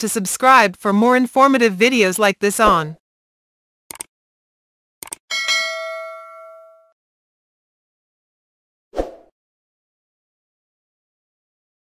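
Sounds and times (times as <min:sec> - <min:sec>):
notification bell chime: 0:05.3 - 0:07.0.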